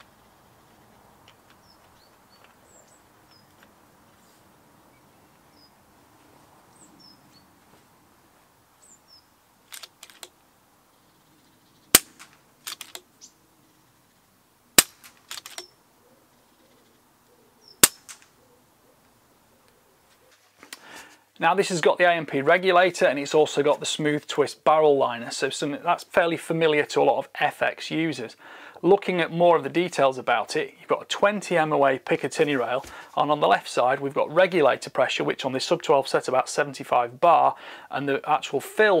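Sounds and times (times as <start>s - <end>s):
birds chirping: 0.0s - 14.4s, 15.5s - 21.0s
air rifle shots: 11.9s - 13.0s, 14.8s - 15.7s, 17.8s - 18.3s.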